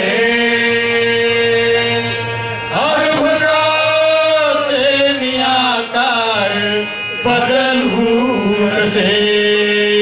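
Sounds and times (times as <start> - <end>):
man singing folk song: 0.0 - 10.0.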